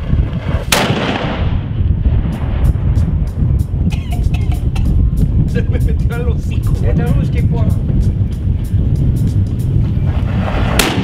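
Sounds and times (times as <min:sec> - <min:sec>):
cannon blast with echo: 0:00.0 - 0:01.9, 0:10.4 - 0:11.0.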